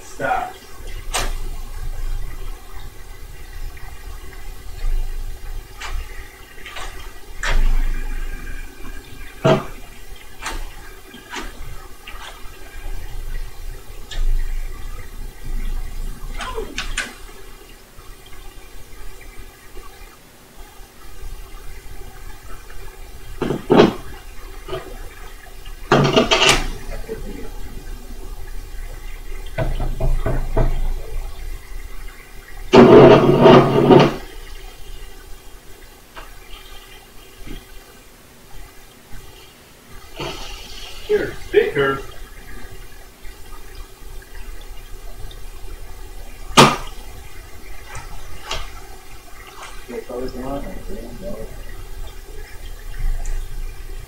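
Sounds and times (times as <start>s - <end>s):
noise bursts and clicks: 0.0s - 54.0s.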